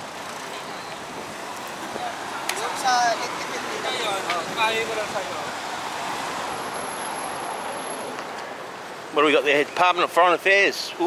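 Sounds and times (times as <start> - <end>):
cars passing on city road: 0.0 - 11.0.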